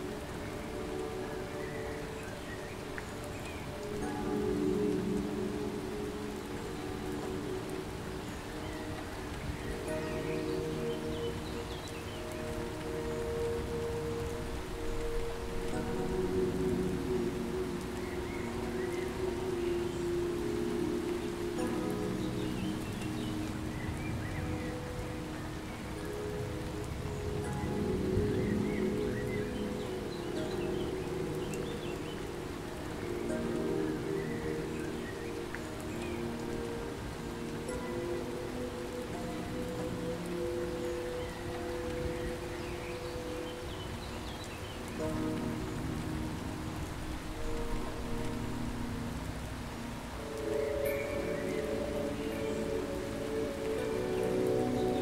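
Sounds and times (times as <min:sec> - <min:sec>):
rain falling steadily: 0:00.0 - 0:55.0
soft long-held music chords: 0:00.0 - 0:55.0.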